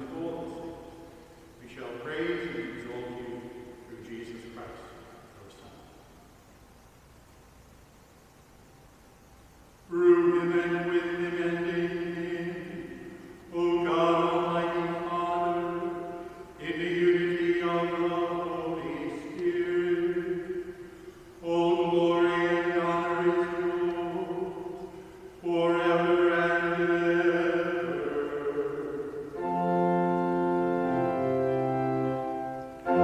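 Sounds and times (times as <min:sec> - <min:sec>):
man chanting: 0:00.0 - 0:01.0, 0:01.6 - 0:06.0, 0:09.9 - 0:20.7, 0:21.4 - 0:29.5.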